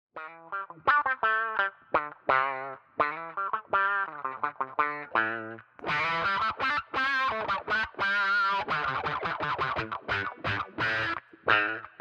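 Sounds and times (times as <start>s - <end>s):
choppy electric guitar notes: 0.2s - 12.0s.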